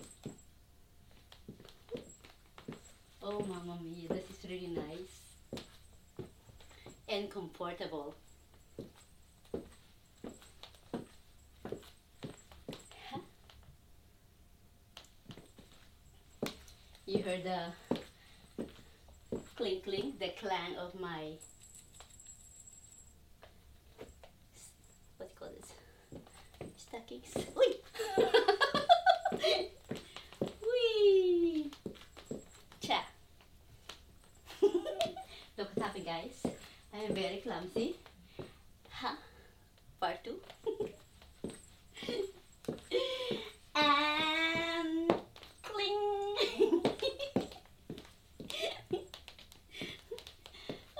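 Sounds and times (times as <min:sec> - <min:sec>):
light metallic clinks: 0:21.3 - 0:25.1.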